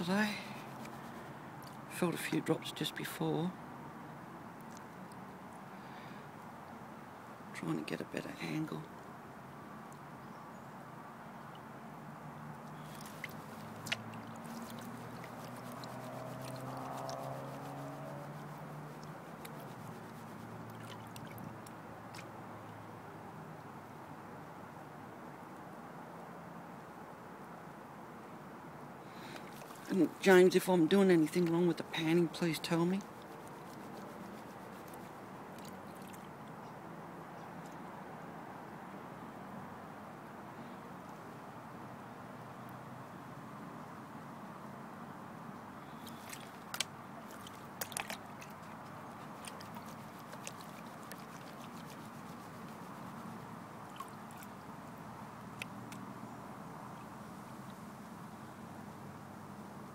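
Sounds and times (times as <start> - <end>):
water sloshing in a pan: 12.8 - 21.5
water sloshing in plastic pan: 12.8 - 21.5, 29.3 - 36.3, 46.0 - 54.6.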